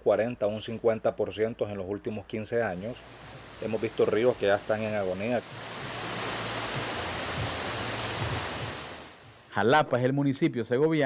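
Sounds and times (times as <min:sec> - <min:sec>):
stream running over rocks: 0:03.0 - 0:09.6.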